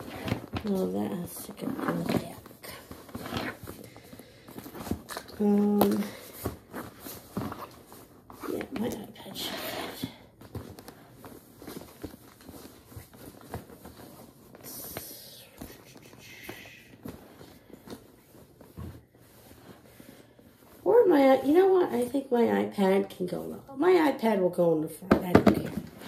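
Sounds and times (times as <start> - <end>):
tote bag rustling: 0.0 - 22.3.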